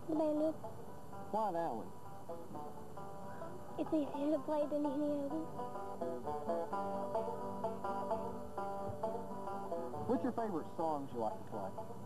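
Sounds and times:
banjo picking: 0.0 - 12.0.

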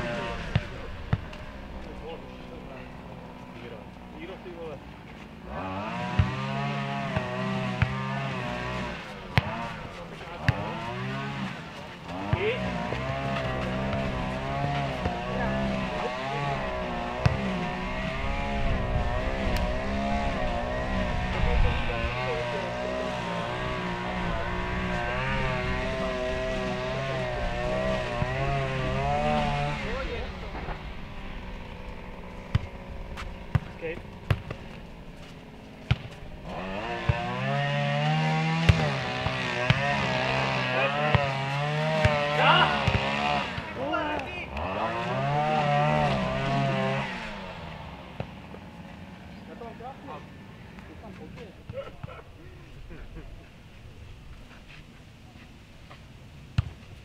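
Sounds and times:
ball kicked and bouncing: 7.1 - 8.3, 9.3 - 9.7, 12.3 - 15.2, 17.2 - 17.5, 32.5 - 37.3, 38.6 - 40.2, 41.0 - 44.3, 56.6 - 56.8
motor engine wavering pitch: 12.1 - 49.6.

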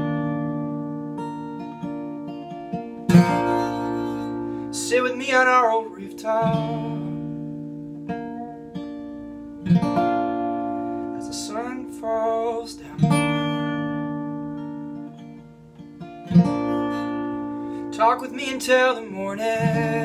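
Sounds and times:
acoustic guitar strummed: 0.0 - 20.0.

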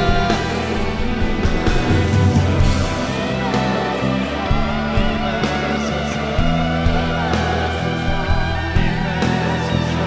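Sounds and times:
ambient electric guitar: 0.0 - 10.0
worship band playing: 0.0 - 10.0.

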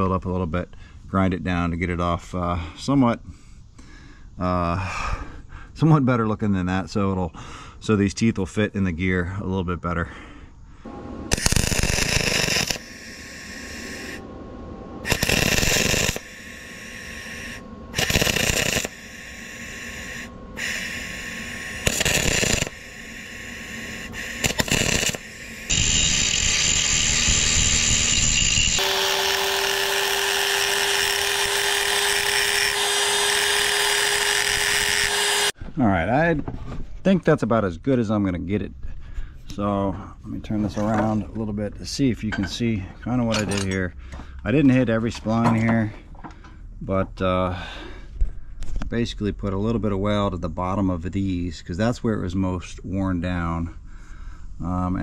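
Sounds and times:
power grinder whining: 10.9 - 35.6
wire-feed welding bursts: 11.3 - 14.2, 15.0 - 35.6.

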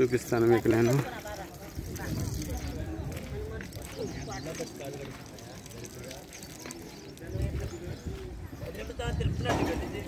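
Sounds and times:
people talking in background: 0.0 - 10.0.

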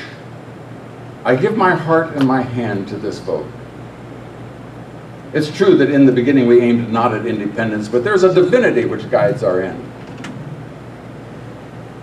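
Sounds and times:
air conditioning hum and hiss: 0.0 - 12.0.

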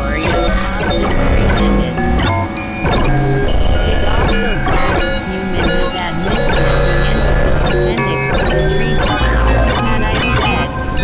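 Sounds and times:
experimental synthesizer music: 0.0 - 11.0
low rumble: 0.0 - 11.0.

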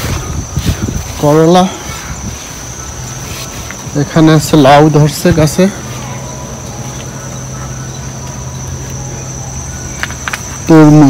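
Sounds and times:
high insect drone: 0.0 - 11.0
man's voice: 1.1 - 2.2, 3.8 - 5.9, 10.6 - 11.0.

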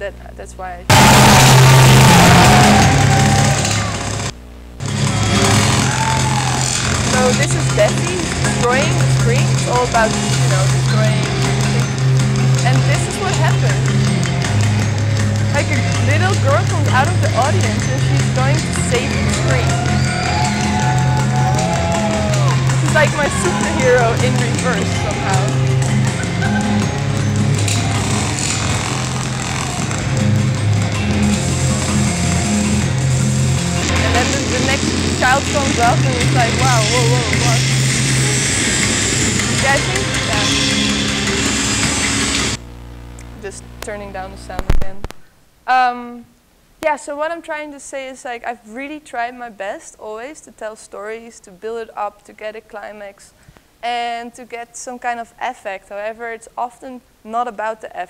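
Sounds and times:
low droning tones: 0.8 - 45.2
noisy electronic music: 0.9 - 44.0
harsh dense noise: 0.9 - 45.6.

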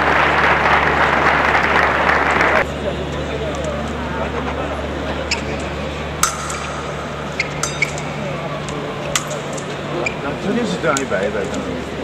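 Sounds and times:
low hum: 0.0 - 10.1
fencing blades clashing: 5.3 - 9.7.

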